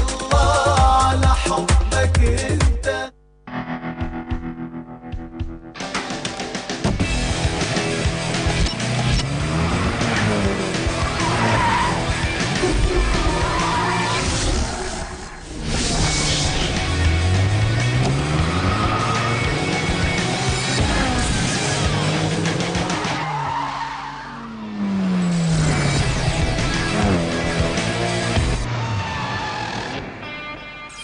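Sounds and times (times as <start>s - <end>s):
rock music: 3.5s - 23.4s, 25.6s - 28.7s, 29.8s - 31.0s
car tyres screeching: 8.2s - 30.2s
tyres squealing on tarmac: 11.0s - 12.3s, 28.7s - 30.0s.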